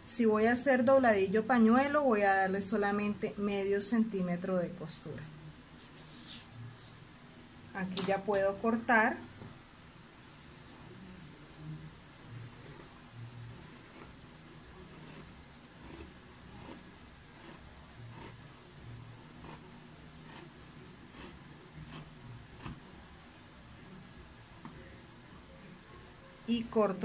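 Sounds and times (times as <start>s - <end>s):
scissors snipping fabric: 14.9s - 16.8s, 19.4s - 19.6s, 21.1s - 22.8s.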